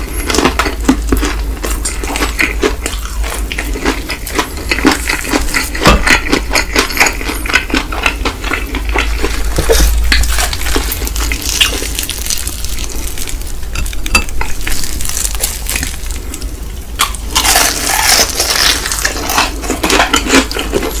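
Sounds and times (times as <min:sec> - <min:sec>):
crunchy chewing: 0:00.0 - 0:21.0.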